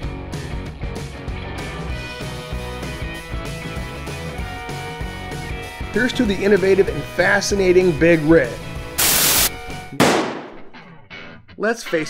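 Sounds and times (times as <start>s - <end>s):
burst of hissing noise: 9.0s - 9.6s
sharp bang: 10.0s - 10.8s.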